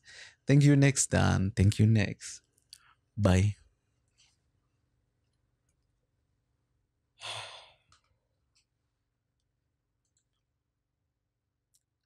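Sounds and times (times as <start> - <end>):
man sighing: 7.2 - 7.8.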